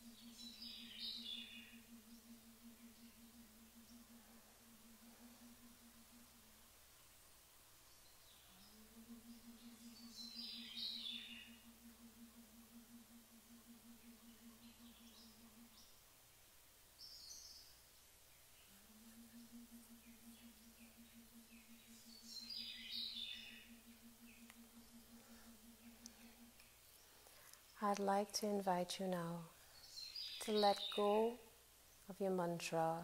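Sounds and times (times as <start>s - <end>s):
birds chirping: 8.0s - 11.7s, 19.3s - 28.9s, 29.6s - 32.8s
woman humming: 8.4s - 10.2s, 18.7s - 20.2s.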